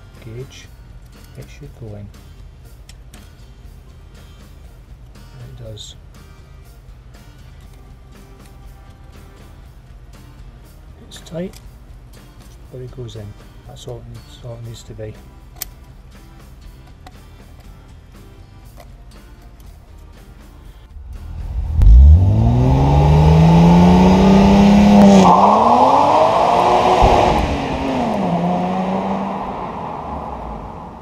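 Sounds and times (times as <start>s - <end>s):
faint background music: 0.0s - 23.0s
car engine accelerating hard: 21.0s - 31.0s.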